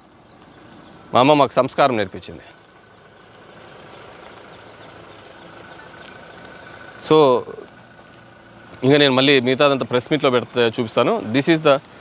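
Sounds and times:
motor hum: 0.0 - 12.0.

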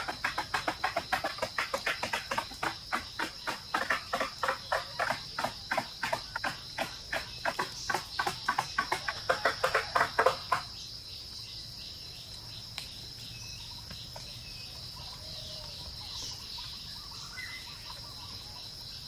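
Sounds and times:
fast sharp knocks: 0.0 - 10.7
crickets buzzing: 0.0 - 19.0.

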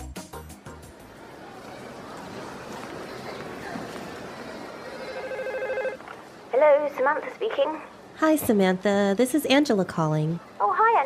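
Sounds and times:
electronic telephone ring: 5.1 - 6.0.

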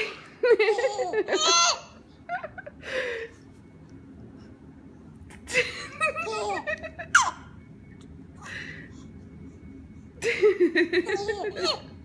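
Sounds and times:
baby laughing: 0.6 - 2.0, 6.0 - 7.5, 10.9 - 11.9.

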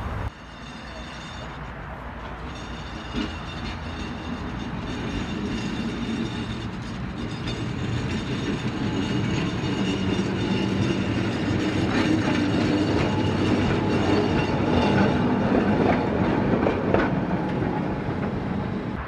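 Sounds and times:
tram wheels clicking on rails: 0.3 - 19.0.

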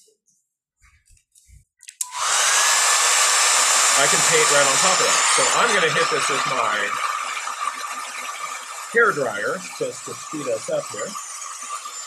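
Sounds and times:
hair dryer blowing: 2.0 - 12.0.

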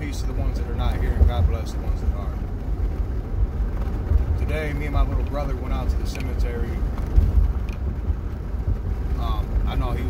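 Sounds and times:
car cabin road and engine rumble: 0.0 - 10.0.

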